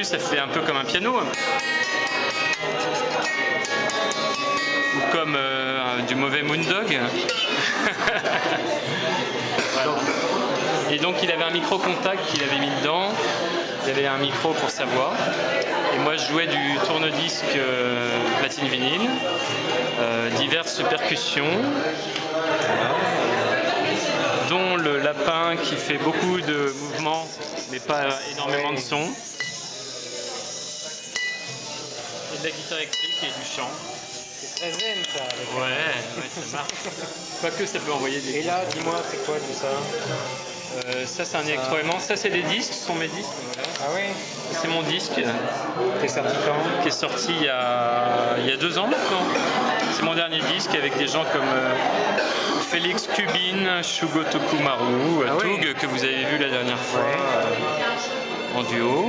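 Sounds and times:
high ringing tone: 1.3 - 5.4, 30.8 - 35.7.

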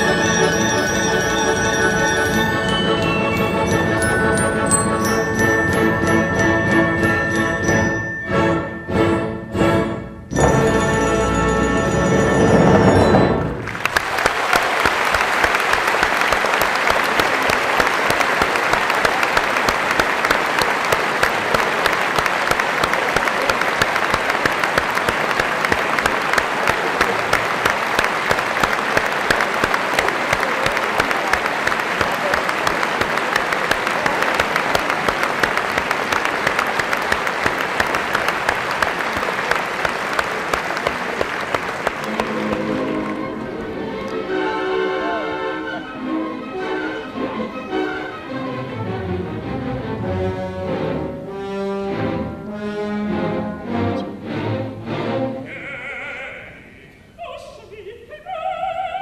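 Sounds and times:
orchestral chord: 0.0 - 13.7, 42.0 - 55.4
audience applauding: 13.3 - 44.5.

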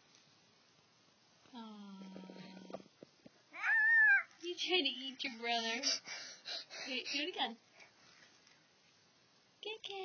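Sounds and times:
child's high-pitched squeal: 3.6 - 4.3.

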